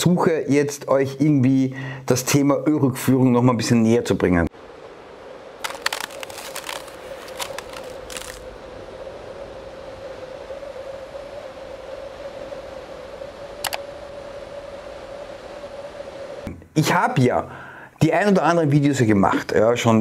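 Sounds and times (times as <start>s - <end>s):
faint hiss: 0.0s - 20.0s
steady low hum: 4.5s - 16.8s
small crackling clicks: 5.6s - 8.5s, 13.6s - 13.8s.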